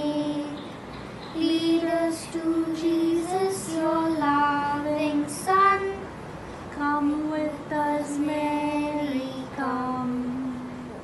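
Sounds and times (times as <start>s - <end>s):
child singing slow melody: 0.0s - 6.2s, 6.8s - 11.0s.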